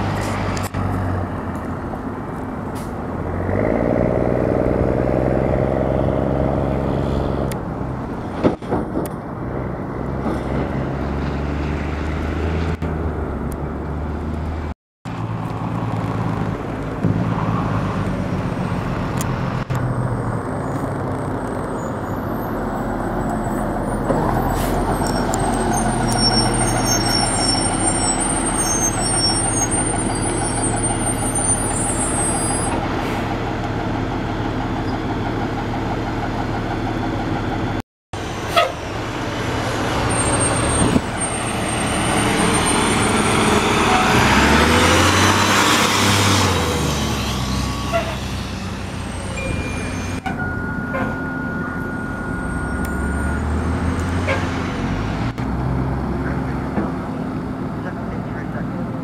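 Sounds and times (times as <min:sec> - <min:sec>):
fire truck diesel engines passing: 0:00.0 - 0:59.0.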